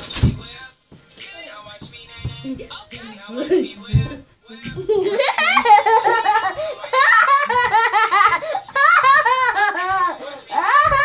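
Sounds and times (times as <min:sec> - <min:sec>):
girls laughing loudly: 0:04.7 - 0:11.0.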